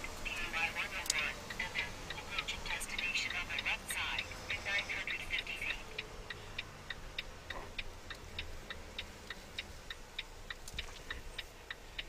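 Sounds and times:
low engine hum: 0:00.0 - 0:12.0
turn signal clicking: 0:00.0 - 0:12.0.

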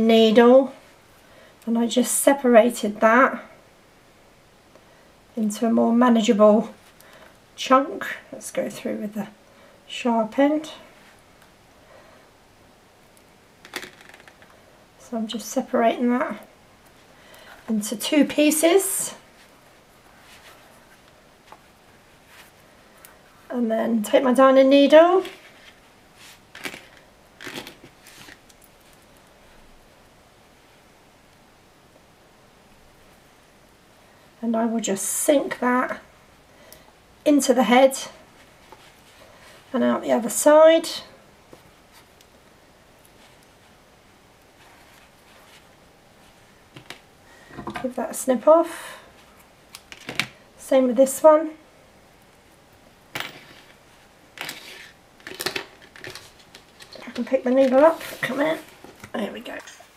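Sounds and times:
rustles and scratches of yarn: 0:18.3 - 0:23.6, 0:25.0 - 0:29.1, 0:38.2 - 0:40.4, 0:41.5 - 0:42.2, 0:43.0 - 0:43.8, 0:44.4 - 0:46.6, 0:53.4 - 0:55.0, 0:56.2 - 0:59.9.

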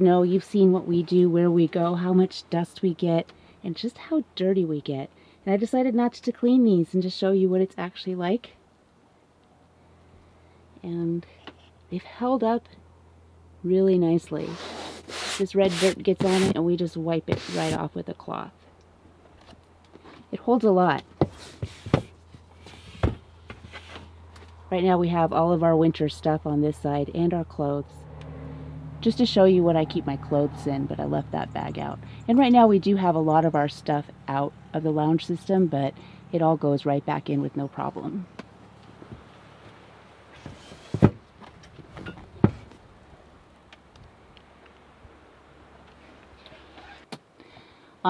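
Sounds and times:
low steady hum: 0:00.0 - 0:48.0.

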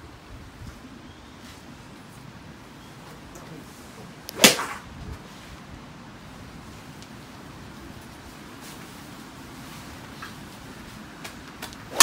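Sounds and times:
golf club striking ball: 0:04.4 - 0:04.8.

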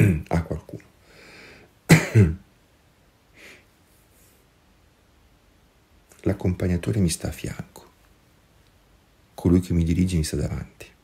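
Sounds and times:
man clearing his throat: 0:00.0 - 0:00.3, 0:01.9 - 0:02.5
man drawing a breath: 0:01.0 - 0:01.7.

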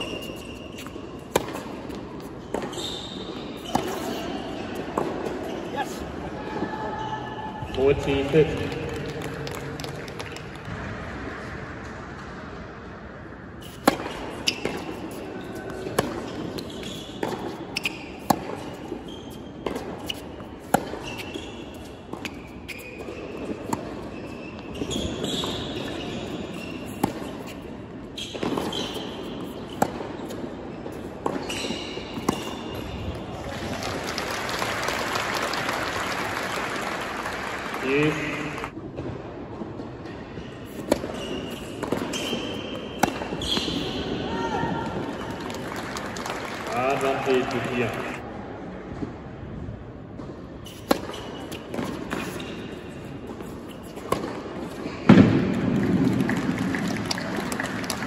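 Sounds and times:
racket striking tennis ball: 0:00.0 - 0:05.5, 0:13.6 - 0:19.0, 0:19.6 - 0:24.1, 0:24.9 - 0:27.7, 0:28.3 - 0:33.1, 0:40.6 - 0:44.2, 0:50.2 - 0:55.6
tennis ball bouncing: 0:00.0 - 0:05.6, 0:13.6 - 0:33.2, 0:40.6 - 0:44.2, 0:50.2 - 0:56.4
applause: 0:08.6 - 0:10.7, 0:33.4 - 0:38.7, 0:45.1 - 0:48.2, 0:55.8 - 0:58.0.

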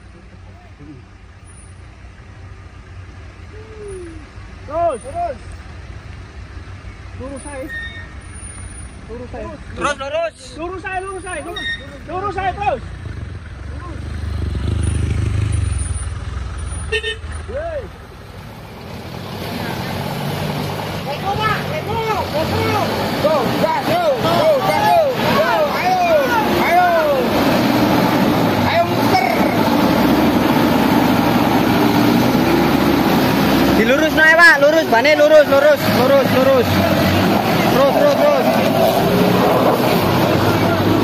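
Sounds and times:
truck engine labouring: 0:10.7 - 0:41.0
many voices shouting: 0:22.4 - 0:27.5.

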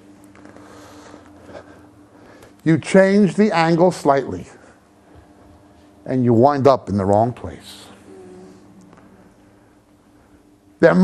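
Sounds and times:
steady low hum: 0:00.0 - 0:11.0
person humming: 0:07.9 - 0:08.8.

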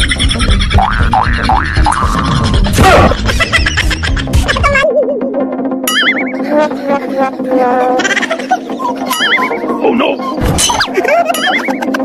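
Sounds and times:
background music: 0:00.0 - 0:12.0
cartoon boing effects: 0:00.8 - 0:03.0, 0:05.8 - 0:06.4.

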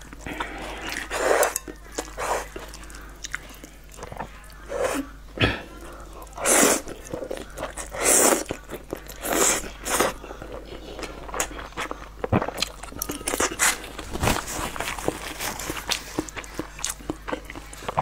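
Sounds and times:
wet chewing with smacks: 0:00.0 - 0:04.6, 0:14.8 - 0:18.0
noodles slurped: 0:06.3 - 0:08.6.

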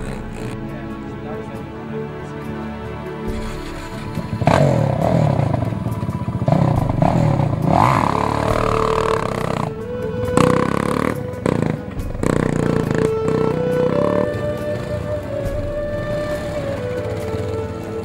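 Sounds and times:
quad engine revving: 0:00.0 - 0:00.6, 0:03.3 - 0:09.8, 0:10.4 - 0:15.2
music playing: 0:00.0 - 0:18.0.

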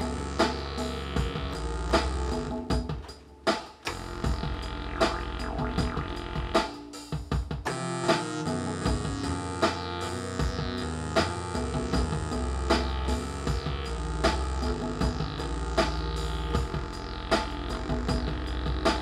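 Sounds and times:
electronic drum beat: 0:00.0 - 0:19.0
layered synthesizer notes: 0:00.0 - 0:19.0.

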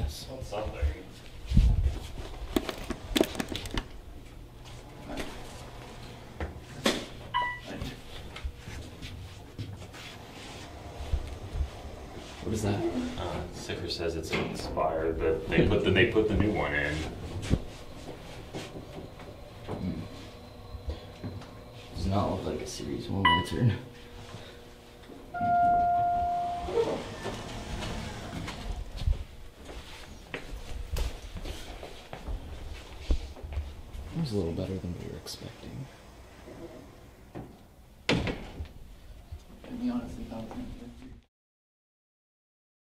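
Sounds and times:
footsteps in elevator cab: 0:00.4 - 0:13.8, 0:15.5 - 0:35.5
elevator doors opening: 0:04.8 - 0:08.2, 0:10.2 - 0:14.8, 0:25.3 - 0:29.1, 0:35.6 - 0:38.7
elevator chime tone: 0:07.3 - 0:07.7, 0:23.2 - 0:23.8, 0:25.3 - 0:27.5
short electronic beep: 0:07.4 - 0:07.7, 0:25.4 - 0:27.0
low rumble: 0:10.7 - 0:13.6.

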